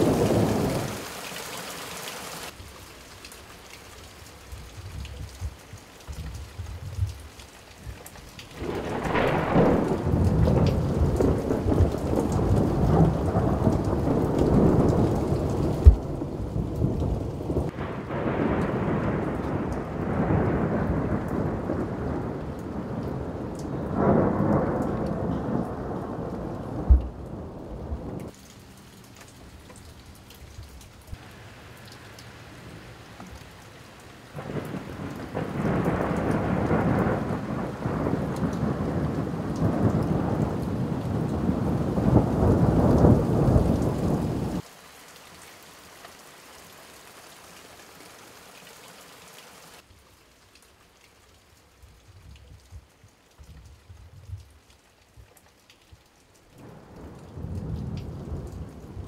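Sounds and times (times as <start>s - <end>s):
rolling thunder: 0.0s - 1.0s, 8.5s - 28.3s, 34.4s - 44.6s, 56.6s - 59.0s
rain: 0.0s - 59.0s.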